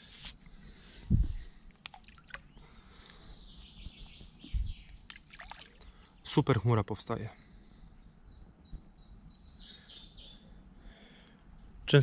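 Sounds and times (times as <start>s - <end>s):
groundbait plopping into water: 1.8s - 2.4s, 5.1s - 5.8s.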